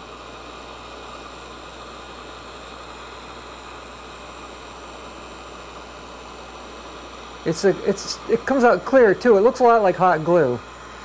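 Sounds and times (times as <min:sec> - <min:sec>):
heat gun fan hiss: 0:00.0 - 0:11.0.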